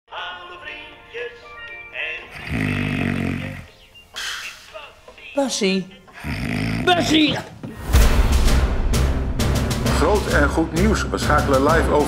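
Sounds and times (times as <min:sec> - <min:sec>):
man snoring: 0:02.2 - 0:04.4, 0:06.1 - 0:07.2.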